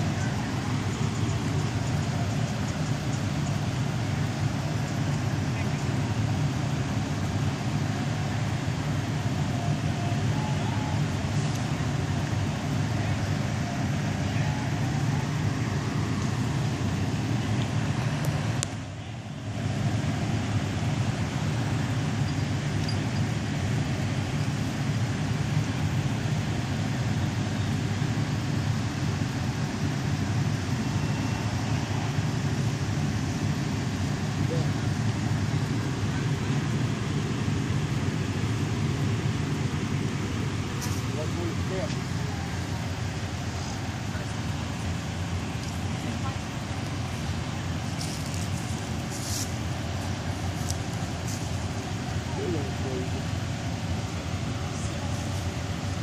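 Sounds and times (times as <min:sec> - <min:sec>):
diesel engine idling: 0:00.0 - 0:56.0.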